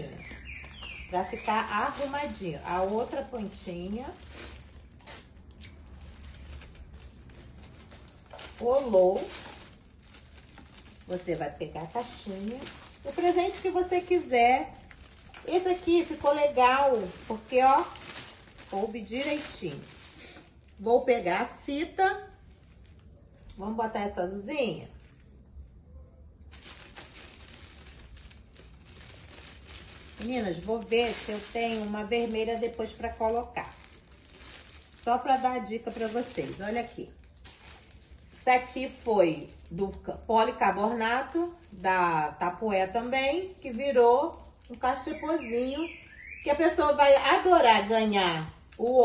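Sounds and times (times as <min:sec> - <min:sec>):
plastic wrap crinkling: 0:00.0 - 0:49.0
tape ripping from dispenser: 0:04.2 - 0:07.5.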